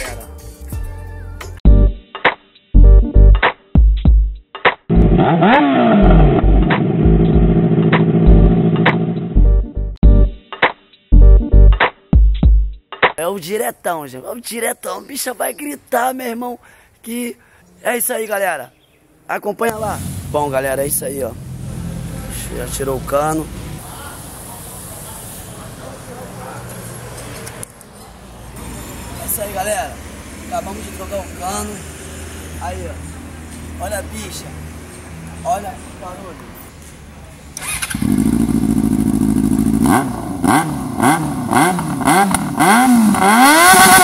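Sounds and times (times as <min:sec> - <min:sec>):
motorcycle engine revving: 0:04.9 - 0:09.4, 0:37.6 - 0:44.0
faint voices: 0:23.6 - 0:28.2.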